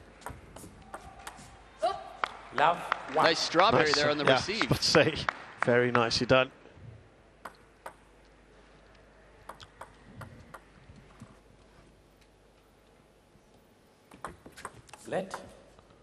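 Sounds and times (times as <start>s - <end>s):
table tennis ball clicks: 7.4s - 8.1s.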